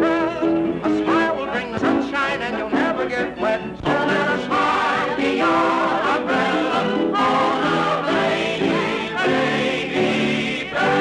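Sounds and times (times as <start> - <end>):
instrumental accompaniment: 0.0 - 11.0
vocal ensemble singing in harmony: 0.0 - 11.0.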